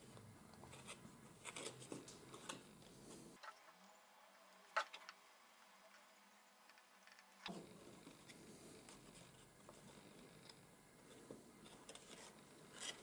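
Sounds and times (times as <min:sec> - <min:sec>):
paper crinkles and ticks: 0:00.5 - 0:03.0.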